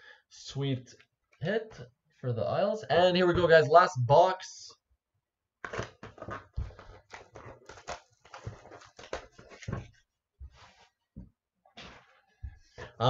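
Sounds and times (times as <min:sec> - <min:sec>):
packaging crackling and crinkling: 0:05.6 - 0:09.9.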